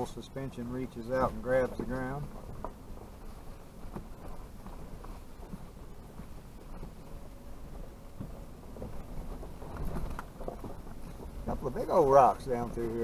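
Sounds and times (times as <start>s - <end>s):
vehicle rumbling on dirt trail: 0.0s - 13.0s.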